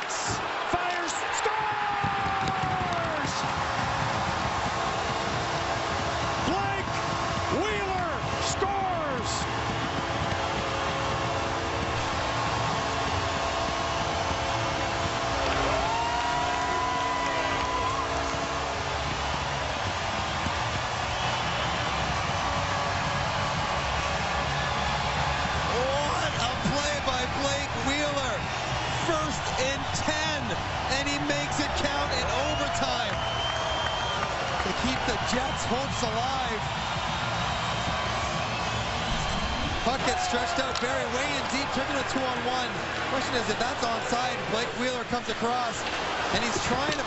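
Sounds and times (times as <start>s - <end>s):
crowd roaring and cheering: 0.0s - 47.0s
whoops and whistles: 32.4s - 35.6s.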